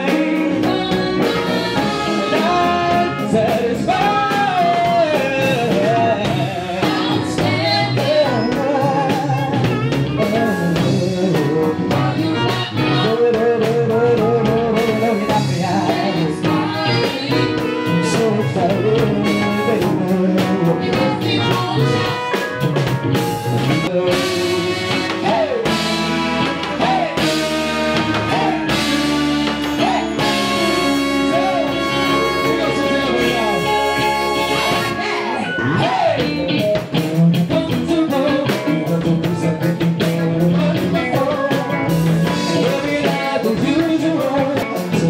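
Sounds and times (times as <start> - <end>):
live band playing: 0.0 - 45.0
vocalists singing long notes: 23.9 - 36.6.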